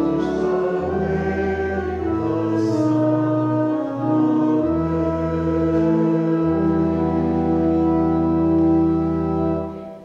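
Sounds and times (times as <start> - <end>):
voices singing a hymn: 0.0 - 9.8
pipe organ sustained chords: 0.0 - 10.0.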